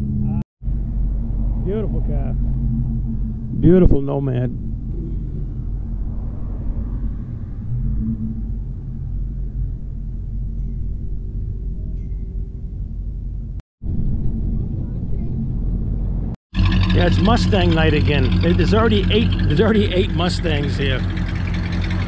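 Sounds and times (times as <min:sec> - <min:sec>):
low outdoor rumble: 0:00.0 - 0:22.0.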